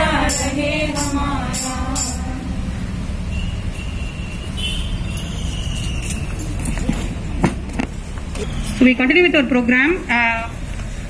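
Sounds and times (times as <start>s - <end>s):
low background rumble: 0.0s - 3.3s
woman's amplified voice: 8.8s - 10.6s.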